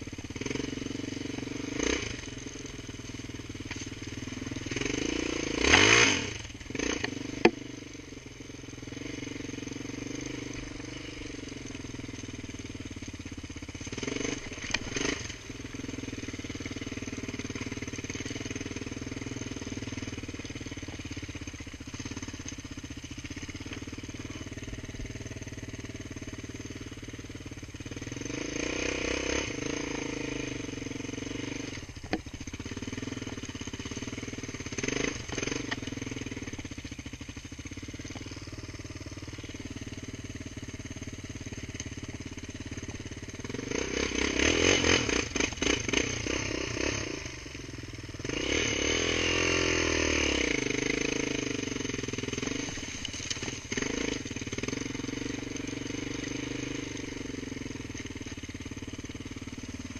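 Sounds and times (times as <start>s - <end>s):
off-road vehicle engine running: 0.0s - 59.9s.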